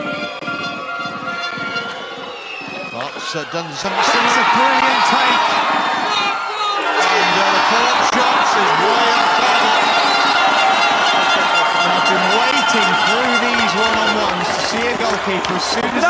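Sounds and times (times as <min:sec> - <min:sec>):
stadium crowd shouting: 0:00.0 - 0:16.0
person talking over crowd: 0:03.0 - 0:05.5, 0:06.1 - 0:09.8, 0:11.7 - 0:16.0.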